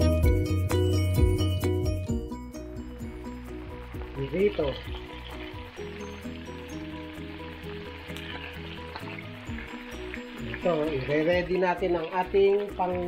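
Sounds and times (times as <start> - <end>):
meat sizzling in frying pan: 2.7 - 13.0.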